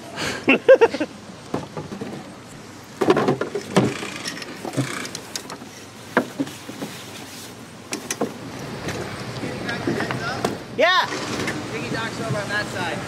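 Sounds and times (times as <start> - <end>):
knocks and clicks of rigging: 3.0 - 7.3, 7.9 - 11.6.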